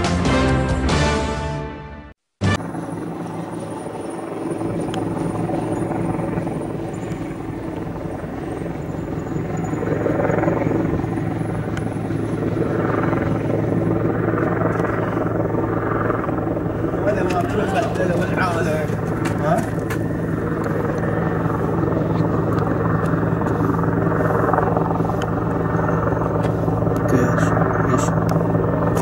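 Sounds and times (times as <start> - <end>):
helicopter rotor drone: 2.4 - 29.0.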